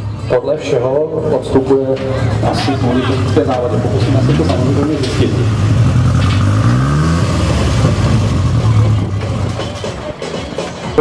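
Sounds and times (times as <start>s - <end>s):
car engine revving then idling: 2.6s - 9.8s.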